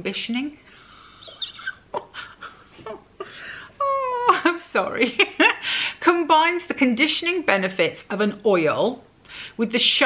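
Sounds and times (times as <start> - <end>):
woman giggling quietly: 0.9 - 3.6.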